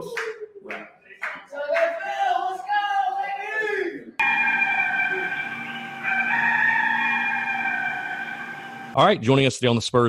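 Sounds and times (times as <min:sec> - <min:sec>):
sustained electronic chord: 0:04.2 - 0:09.0.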